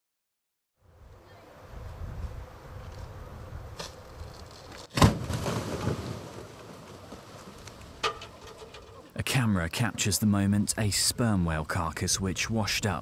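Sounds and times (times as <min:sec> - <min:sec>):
wind on microphone: 0:01.0 - 0:03.8
innards spilling: 0:04.8 - 0:09.1
whale carcass bursting: 0:04.9 - 0:07.6.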